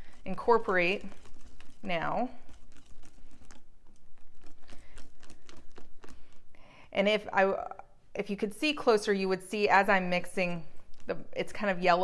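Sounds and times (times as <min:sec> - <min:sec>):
whisk beating mixture in glass bowl: 0:00.0 - 0:06.1.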